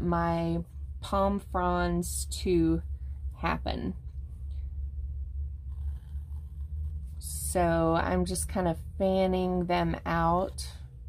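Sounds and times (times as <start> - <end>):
steady low hum: 0.0 - 11.0
pencil scratching on paper: 5.7 - 7.2.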